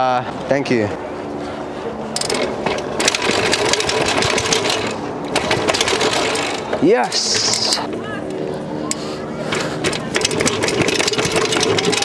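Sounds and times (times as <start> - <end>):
bike clattering down stone steps: 9.5 - 12.0.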